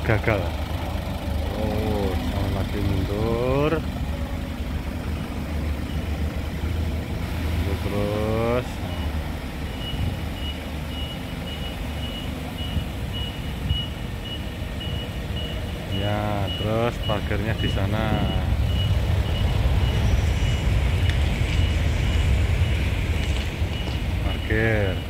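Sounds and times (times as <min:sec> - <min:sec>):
forklift engine running: 0:00.0 - 0:25.0
reversing alarm beeping: 0:01.6 - 0:06.8, 0:08.8 - 0:25.0.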